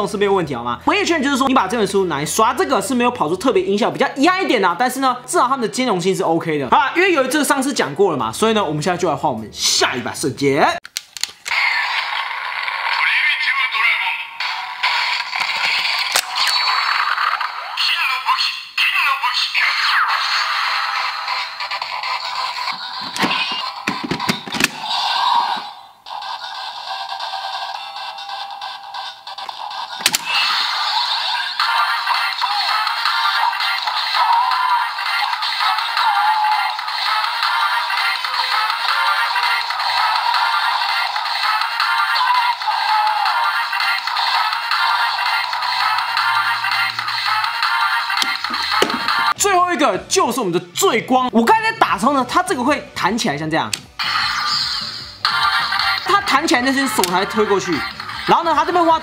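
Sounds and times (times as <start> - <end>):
tinny toy speaker music: 11.5 - 49.4, 53.9 - 59.0
synthesized announcement voice: 55.3 - 59.0.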